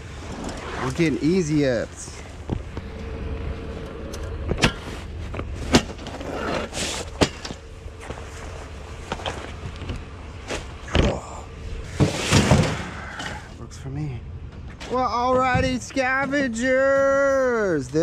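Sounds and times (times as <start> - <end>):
low steady rumble: 0.0 - 18.0.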